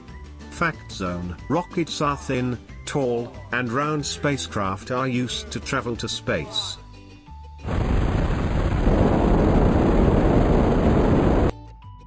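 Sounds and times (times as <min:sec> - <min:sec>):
rocket engines rumbling: 0:07.7 - 0:11.5.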